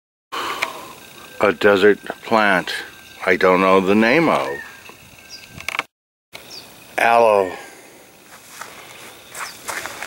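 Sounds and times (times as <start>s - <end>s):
footsteps on gravel: 8.3s - 10.0s.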